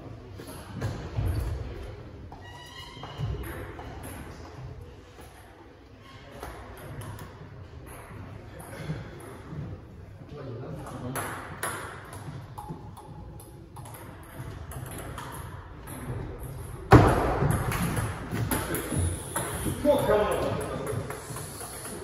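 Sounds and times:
table tennis ball bouncing: 11.1s - 22.0s.

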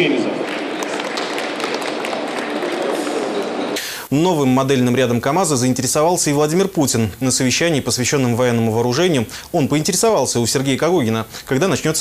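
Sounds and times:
scattered applause: 0.0s - 3.8s.

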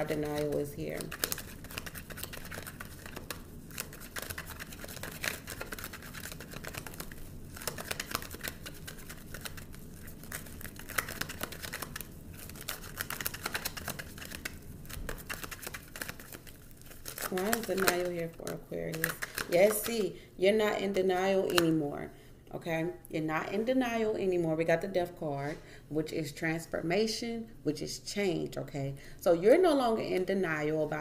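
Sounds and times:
cards being shuffled: 0.0s - 20.1s, 21.4s - 21.8s.

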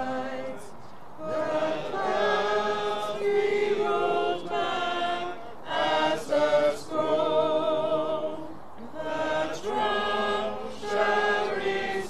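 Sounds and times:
group singing a hymn: 0.0s - 12.0s.

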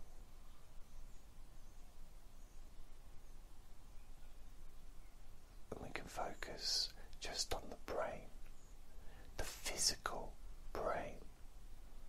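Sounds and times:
man whispering: 5.7s - 11.4s.

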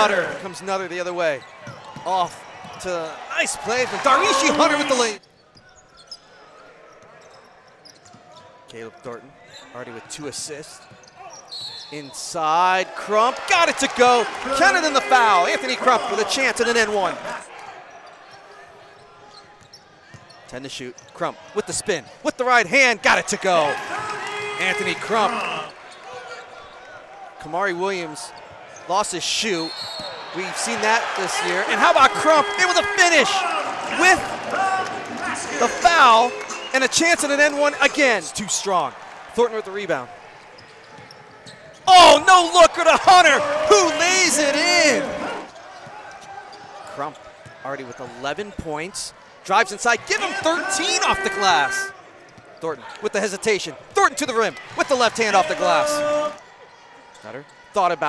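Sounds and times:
arena crowd murmur: 0.0s - 0.9s, 29.6s - 48.2s.

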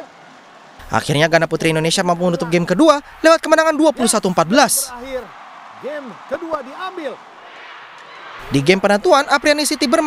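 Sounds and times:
faint arena crowd noise: 0.0s - 10.0s.

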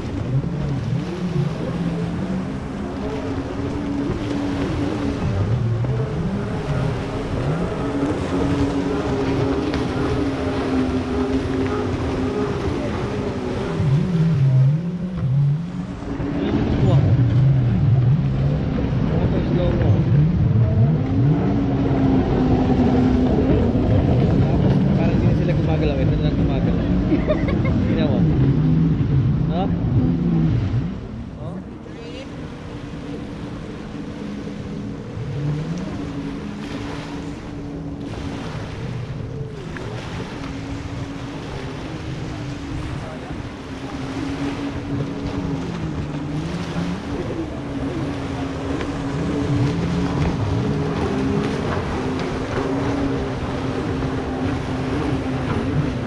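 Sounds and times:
jet ski engines racing: 0.0s - 56.0s.

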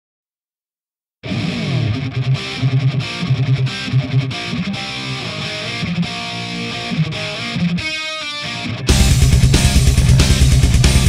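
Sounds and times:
hard rock electric guitar: 1.2s - 11.0s.

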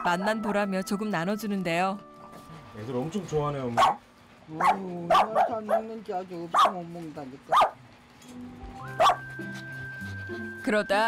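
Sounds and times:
background music with held notes: 0.0s - 4.2s, 8.2s - 11.0s
small dog yapping: 3.8s - 4.0s, 4.6s - 5.9s, 6.6s - 6.8s, 7.5s - 7.8s, 9.0s - 9.3s.

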